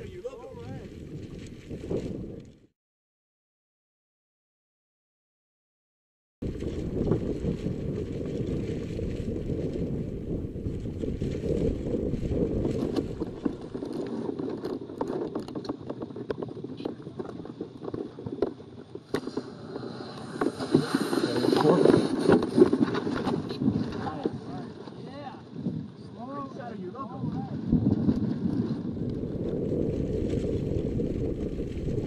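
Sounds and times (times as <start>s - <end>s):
wind buffeting microphone: 0.0s - 2.7s, 6.4s - 32.0s.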